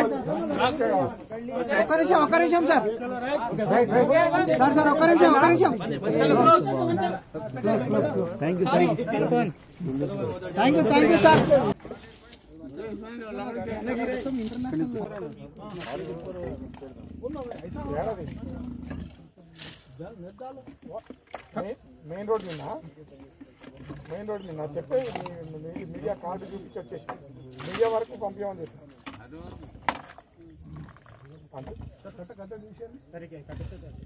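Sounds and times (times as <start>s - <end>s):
people's voices: 0.0s - 34.0s
leopard growling: 16.2s - 19.4s, 30.5s - 32.1s.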